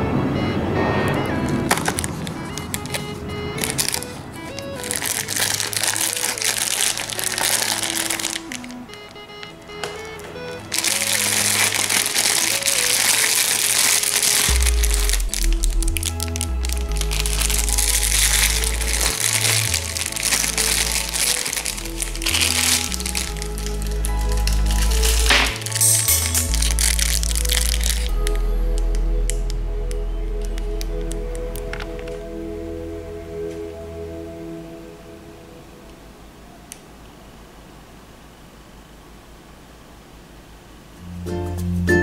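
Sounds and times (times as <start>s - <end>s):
plastic bag crinkling: 1.6s - 29.0s
background music with bass line: 8.2s - 34.8s, 41.0s - 42.0s.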